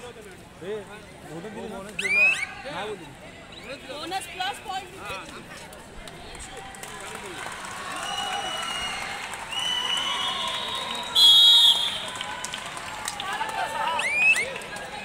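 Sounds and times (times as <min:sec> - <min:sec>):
referee's whistle blast: 0:09.6 - 0:12.1.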